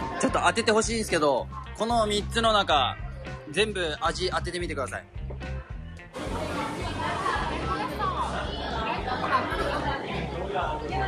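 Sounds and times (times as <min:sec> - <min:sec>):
many voices talking: 0:00.0 - 0:04.7, 0:05.4 - 0:11.0
background music with repeating beat: 0:00.0 - 0:06.2.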